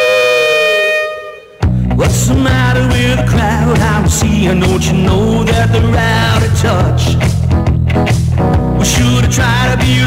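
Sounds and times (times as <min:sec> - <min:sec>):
saxophone long note: 0:00.0 - 0:01.8
rock band with drums and bass: 0:01.4 - 0:10.0.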